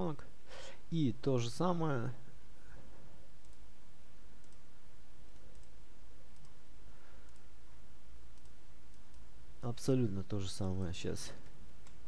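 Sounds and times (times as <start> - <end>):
low background hum: 0.0 - 12.0
faint clicks: 3.4 - 3.7, 4.4 - 6.6, 7.2 - 7.5, 8.3 - 9.3, 11.4 - 12.0.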